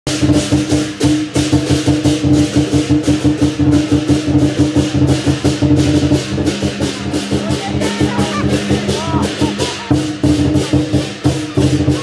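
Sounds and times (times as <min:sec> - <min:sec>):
cymbals clashing: 0:00.1 - 0:12.0
drum beat: 0:00.1 - 0:12.0.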